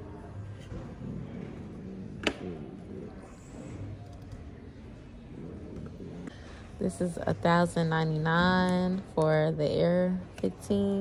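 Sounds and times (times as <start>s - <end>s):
faint distant voices: 0.0s - 7.8s.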